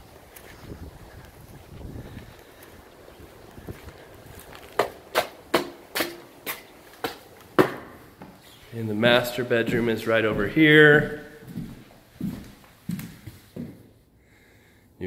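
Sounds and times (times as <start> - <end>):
faint outdoor background noise: 0.0 - 15.0
footsteps on hard floor: 5.6 - 13.9.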